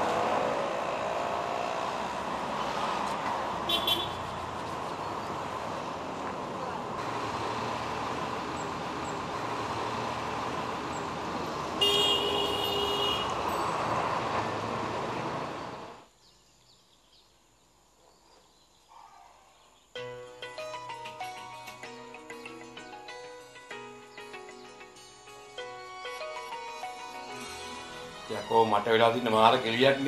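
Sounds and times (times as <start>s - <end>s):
street traffic: 0.0s - 16.2s, 23.8s - 30.0s
car horn: 3.6s - 4.4s, 11.7s - 13.5s.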